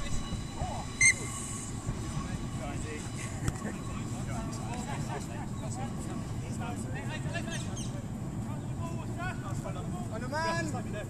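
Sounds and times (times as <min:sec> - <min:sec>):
wind noise: 0:00.0 - 0:06.4
distant players' voices: 0:00.0 - 0:11.0
referee's whistle blast: 0:00.9 - 0:01.6.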